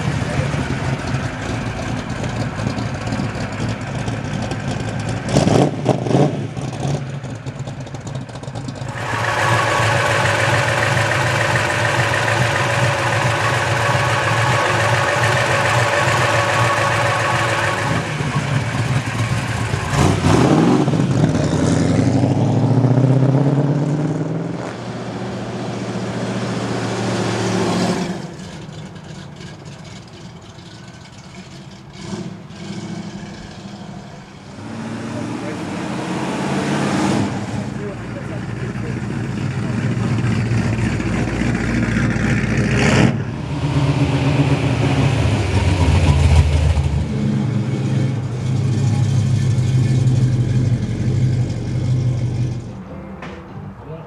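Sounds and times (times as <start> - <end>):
car engines rumbling past: 0.0 - 54.0
car revving and accelerating away: 5.2 - 7.1, 8.8 - 28.4, 32.0 - 52.8.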